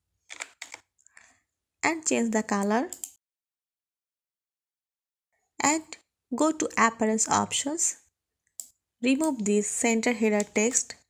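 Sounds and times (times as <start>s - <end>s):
keyboard and mouse clicks: 0.3s - 0.9s, 2.6s - 3.2s, 8.5s - 9.5s
person speaking: 9.0s - 10.9s.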